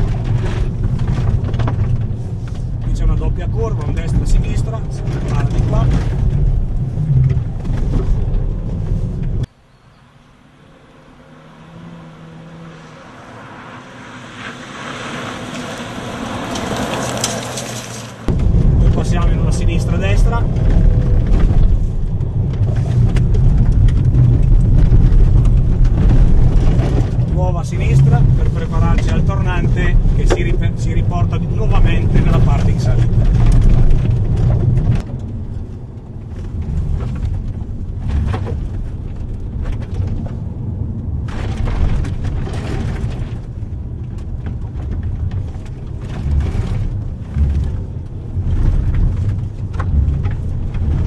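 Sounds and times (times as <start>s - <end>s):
car engine and road rumble: 0.0s - 51.0s.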